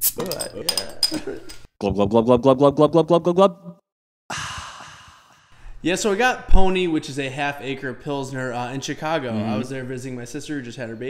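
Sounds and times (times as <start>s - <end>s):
breathy sigh: 4.3s - 5.8s
man speaking: 5.8s - 11.0s.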